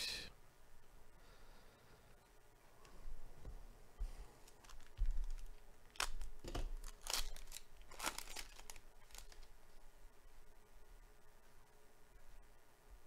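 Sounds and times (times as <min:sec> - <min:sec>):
foil wrapper tearing and crinkling: 0:04.4 - 0:09.5.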